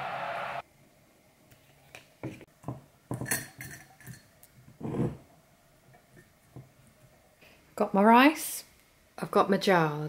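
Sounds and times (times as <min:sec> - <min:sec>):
glass jars clinking: 0:03.1 - 0:05.2.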